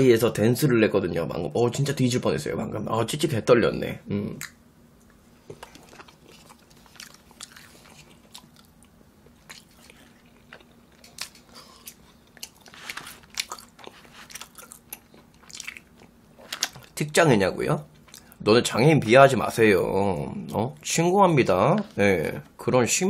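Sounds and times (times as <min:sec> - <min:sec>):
faint steady hum: 0:00.0 - 0:23.0
person chewing close to microphone: 0:04.4 - 0:17.0, 0:17.9 - 0:18.4.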